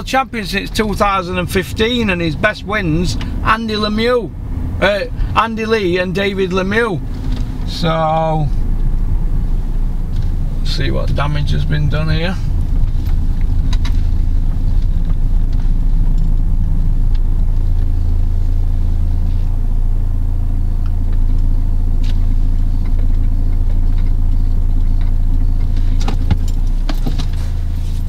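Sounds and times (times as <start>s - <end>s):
car engine hum from inside: 0.0s - 28.0s.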